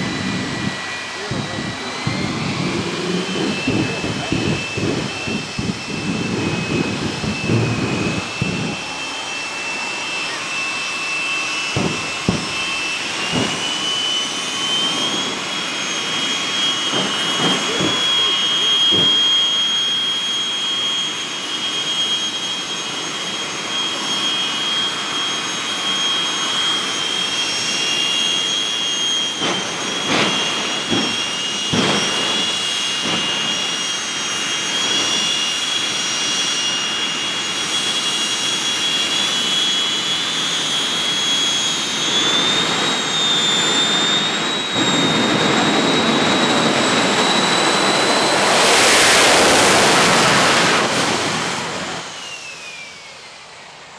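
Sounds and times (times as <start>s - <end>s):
jet engines whining: 0.0s - 53.9s.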